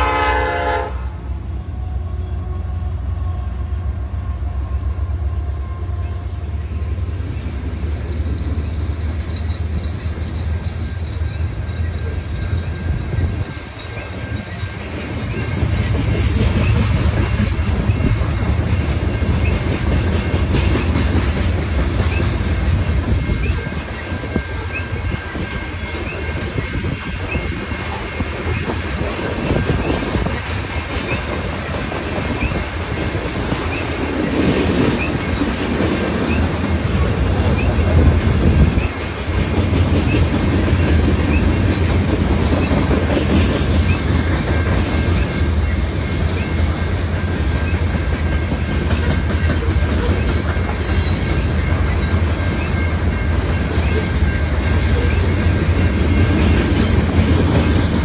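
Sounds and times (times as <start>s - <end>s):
train low rumble: 0.0s - 58.0s
high wheel squeals: 6.0s - 16.8s, 22.0s - 28.7s, 29.4s - 32.7s.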